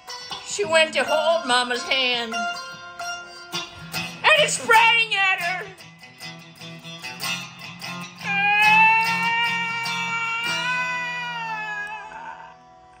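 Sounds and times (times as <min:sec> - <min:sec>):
electric guitar notes and chord: 0:00.0 - 0:12.9.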